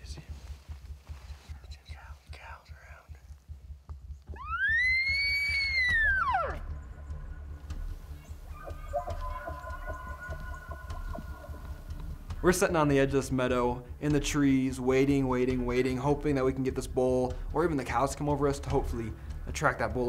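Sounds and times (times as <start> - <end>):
low rumble: 0.2 - 14.2
elk bugling: 4.3 - 12.3
faint steady tones: 6.6 - 12.7.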